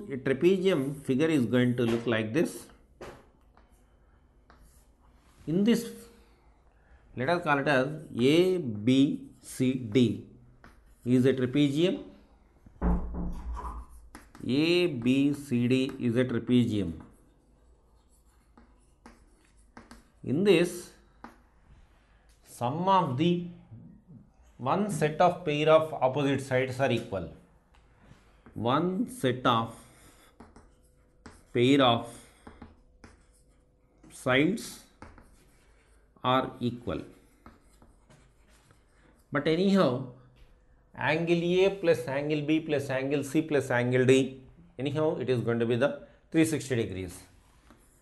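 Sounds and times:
chalk scratching on chalkboard: 3.6s - 6.2s, 10.6s - 11.6s, 13.6s - 21.5s, 28.3s - 39.7s, 47.2s - 48.0s
chalk tapping on chalkboard: 4.4s - 4.9s, 9.8s - 11.5s, 13.7s - 21.5s, 29.8s - 36.0s, 37.1s - 39.3s, 47.6s - 48.0s.

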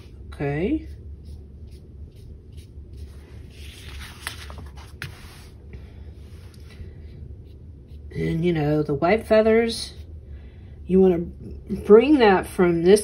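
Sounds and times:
paintbrush scratchy brushing: 0.0s - 5.6s, 6.2s - 8.4s.

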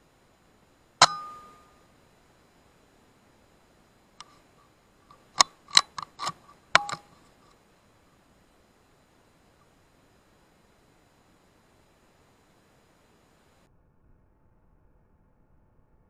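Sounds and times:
rifle bolt clicking: 1.0s - 1.7s, 5.1s - 7.2s
air rifle shot: 1.0s - 1.8s.

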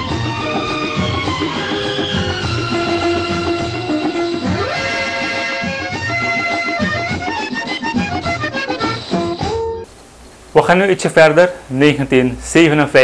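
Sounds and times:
accordion-led orchestral music: 0.0s - 9.8s.

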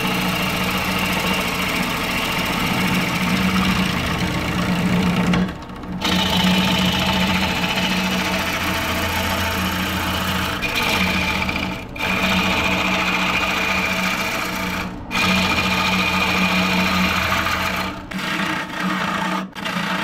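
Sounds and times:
wood lathe motor humming: 0.0s - 20.0s.

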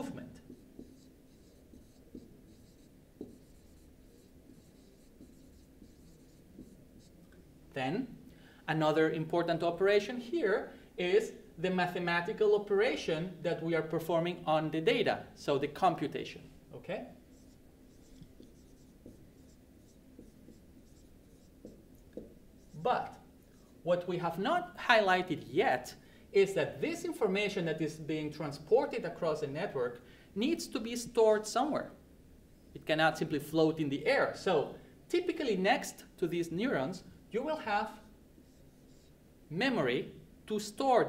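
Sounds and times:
marker squeaking on whiteboard: 0.0s - 7.2s, 17.0s - 23.8s, 37.9s - 39.2s.

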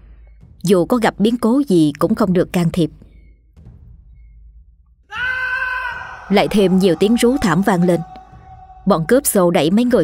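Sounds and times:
long high-pitched scream: 5.1s - 9.2s.

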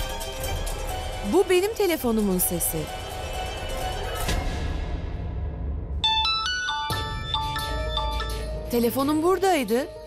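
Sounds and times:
mobile phone ringtone: 6.0s - 8.7s.

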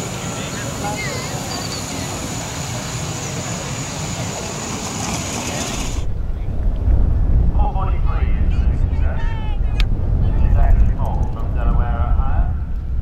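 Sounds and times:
faint distant voices: 0.0s - 6.5s
thin high-pitched whine: 0.3s - 3.6s
wind buffeting microphone: 4.1s - 13.0s.

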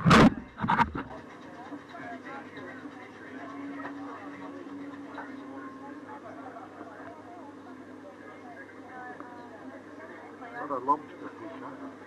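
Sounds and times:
people chatting quietly: 0.0s - 12.0s.

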